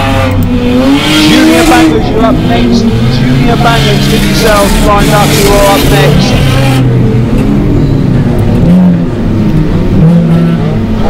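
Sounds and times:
race car engines revving: 0.0s - 11.0s.

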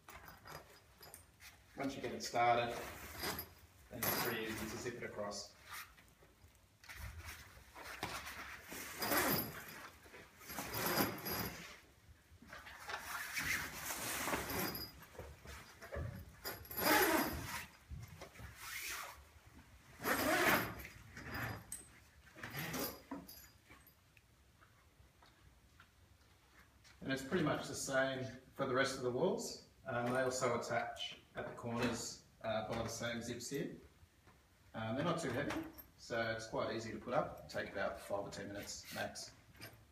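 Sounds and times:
zip being pulled: 8.9s - 9.6s, 16.6s - 17.7s, 20.0s - 21.6s
canvas rustling: 12.6s - 19.3s.

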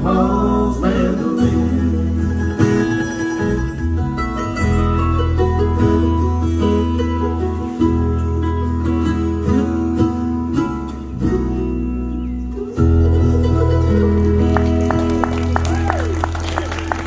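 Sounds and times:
bluegrass band playing: 0.0s - 17.0s.

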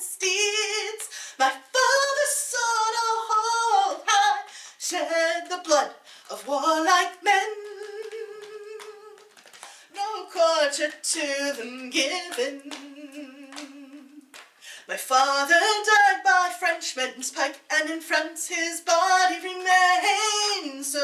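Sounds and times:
woman singing a ballad: 0.0s - 21.0s.

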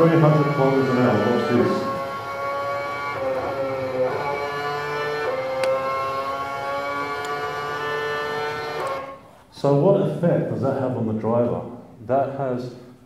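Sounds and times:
racing car engine through speakers: 0.0s - 9.3s.

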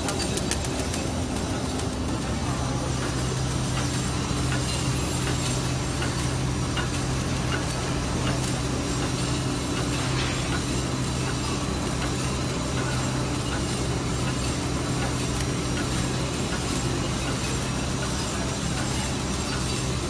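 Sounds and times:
packaging machine humming: 0.0s - 20.0s.

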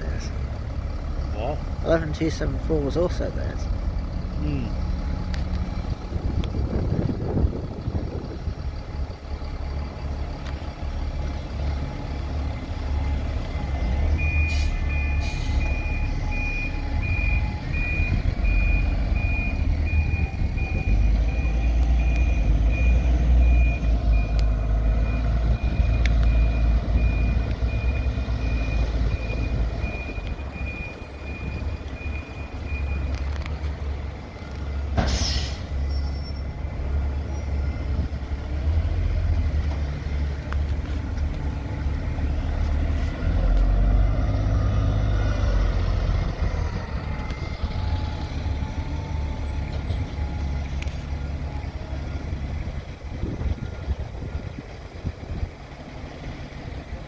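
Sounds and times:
bus engine rumble: 0.0s - 57.0s
reversing alarm beeping: 14.1s - 33.2s
air brake hiss: 14.5s - 15.7s, 35.0s - 35.9s.

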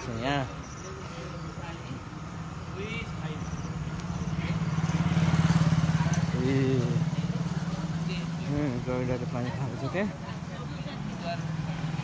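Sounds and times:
voices: 0.0s - 12.0s
motorcycle engine passing: 2.3s - 12.0s.

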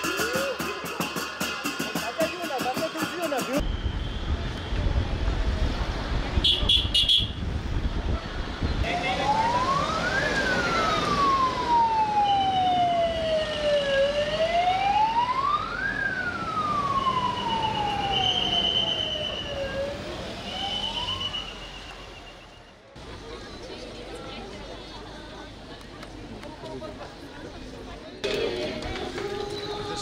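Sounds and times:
police siren wailing: 8.8s - 22.1s.

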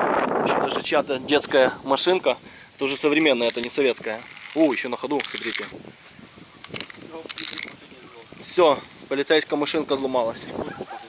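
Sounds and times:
toy gear mechanism whirring: 3.3s - 5.7s, 6.6s - 7.8s.

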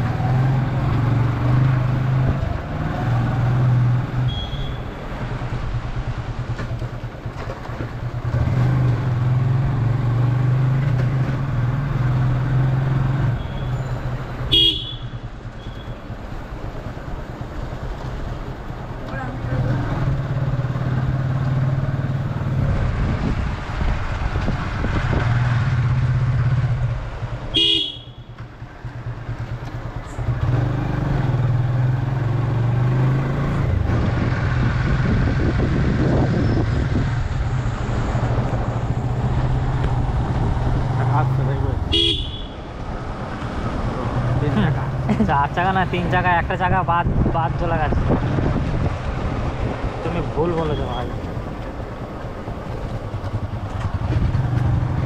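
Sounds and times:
horn toots: 4.2s - 5.0s, 14.5s - 16.0s, 27.5s - 28.4s, 41.9s - 42.7s
motorcycle engine running: 24.8s - 32.2s, 38.3s - 43.2s, 48.2s - 55.0s.

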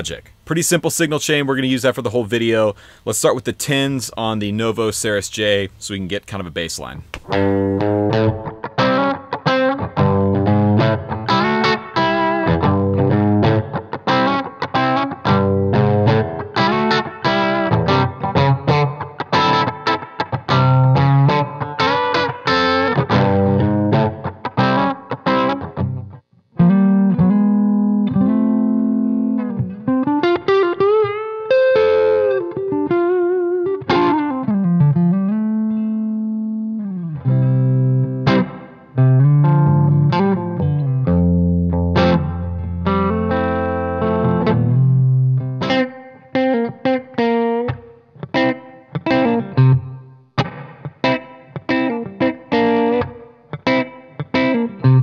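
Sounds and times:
electric guitar playing: 7.1s - 55.0s.

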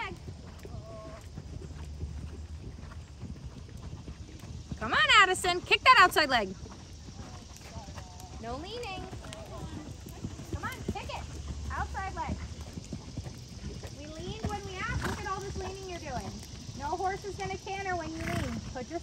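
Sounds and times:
hoofbeats on sand: 0.0s - 19.0s
voices talking: 4.7s - 12.6s, 13.5s - 19.0s.

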